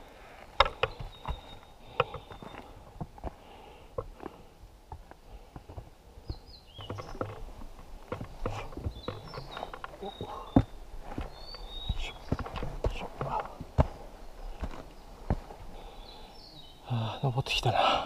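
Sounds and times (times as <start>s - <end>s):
boots scuffing on rock: 0.4s - 16.1s
birds chirping and whistling: 0.6s - 3.9s, 6.2s - 17.9s.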